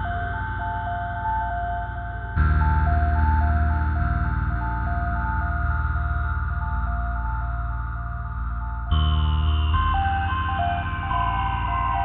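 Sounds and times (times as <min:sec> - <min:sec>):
heavy pulsing bass: 0:02.4 - 0:12.0.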